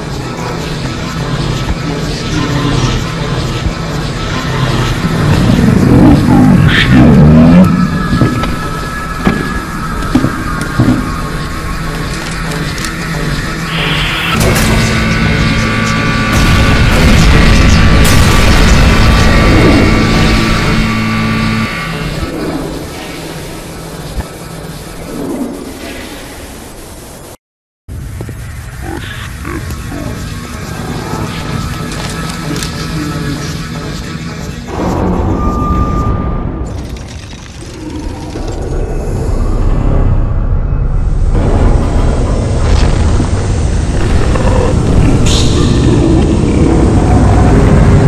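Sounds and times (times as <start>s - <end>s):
booming battle effects: 0.0s - 11.6s, 13.6s - 23.6s, 32.8s - 48.0s
action soundtrack music: 0.0s - 25.7s, 28.5s - 48.0s
low drone: 0.0s - 27.3s, 28.0s - 48.0s.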